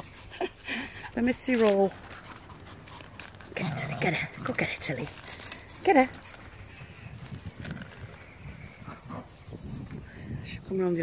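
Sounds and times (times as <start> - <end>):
faint footsteps on gravel: 1.1 - 10.7.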